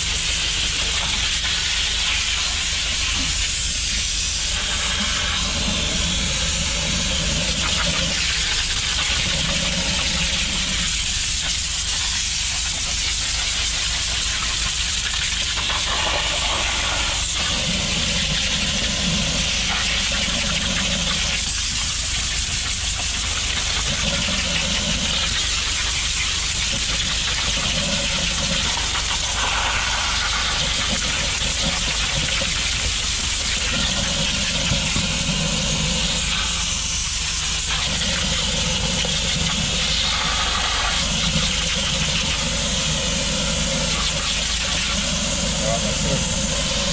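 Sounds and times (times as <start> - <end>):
water jet spraying onto paving: 0.0 - 46.9.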